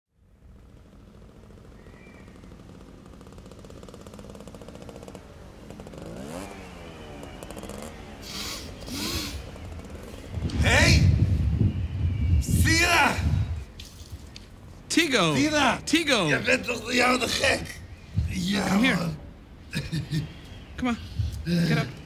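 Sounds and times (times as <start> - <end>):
short sharp breaths: 8.2 - 9.5.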